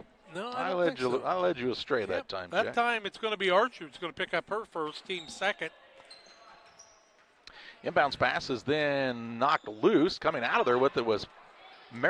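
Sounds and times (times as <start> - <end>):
sneaker squeaks on court: 4.8 - 7.4.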